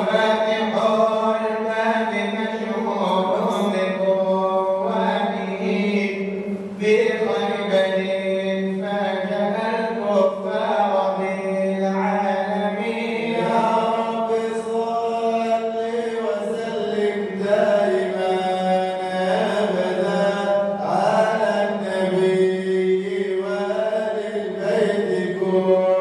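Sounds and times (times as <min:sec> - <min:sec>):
man chanting: 0:00.0 - 0:26.0.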